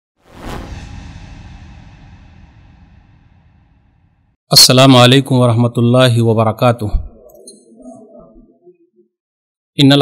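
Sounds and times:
whoosh: 0.2s - 4.4s.

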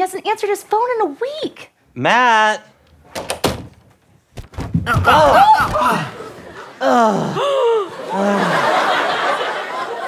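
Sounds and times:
heavy object tumbling down stairs: 3.6s - 5.7s.

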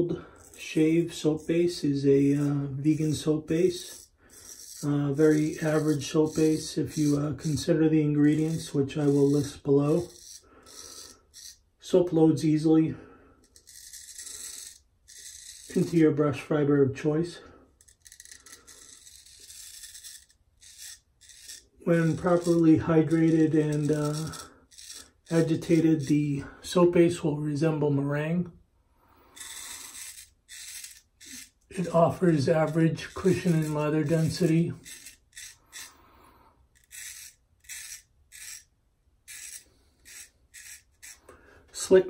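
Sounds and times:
razor scraping beard stubble: 0.0s - 12.8s, 13.4s - 27.1s, 29.2s - 42.0s.

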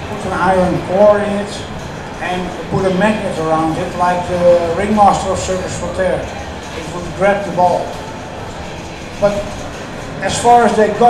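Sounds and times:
man speaking: 0.0s - 8.0s, 10.2s - 11.0s
exhibition hall background noise: 0.0s - 11.0s.

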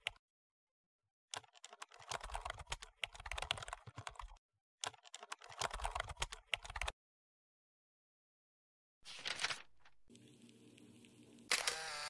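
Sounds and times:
computer keyboard typing: 1.4s - 6.9s.

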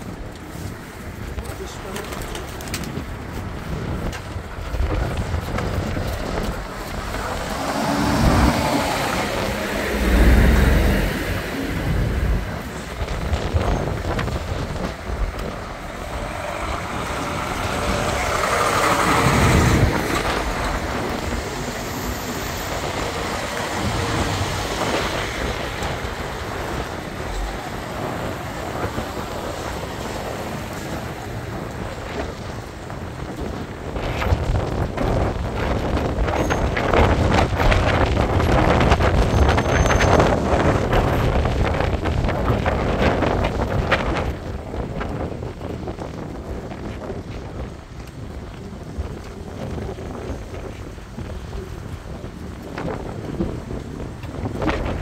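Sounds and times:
heavy trucks passing: 2.9s - 55.0s
cars driving past: 5.7s - 14.4s, 15.4s - 33.1s.

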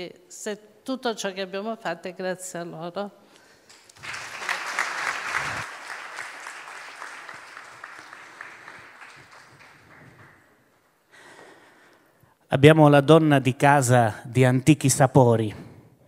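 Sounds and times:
audience applauding: 3.7s - 10.8s.

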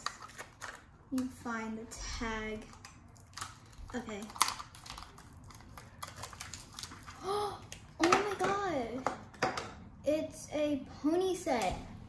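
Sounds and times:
plastic pieces crinkling and clicking: 0.0s - 1.4s, 2.5s - 9.7s
child's voice: 1.1s - 2.8s, 7.2s - 9.2s, 10.0s - 12.0s.

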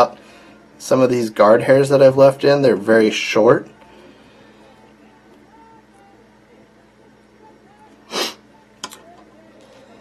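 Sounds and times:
sharp burst of breath: 8.1s - 8.4s.

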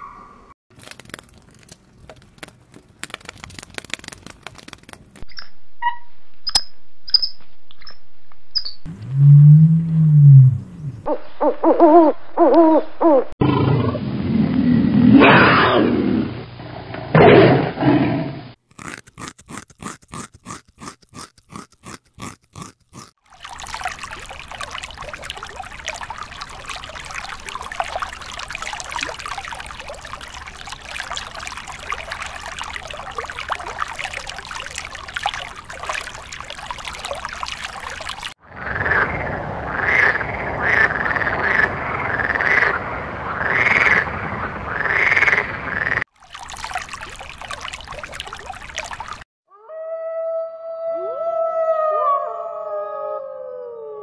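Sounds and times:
tiger roaring: 13.4s - 18.4s.

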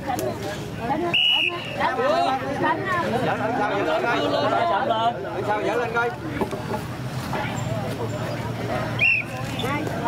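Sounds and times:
faint voices of people: 0.0s - 10.0s.

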